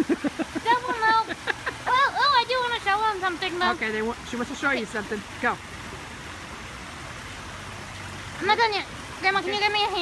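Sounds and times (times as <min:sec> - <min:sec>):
high-pitched voice laughing: 0:00.0 - 0:02.3.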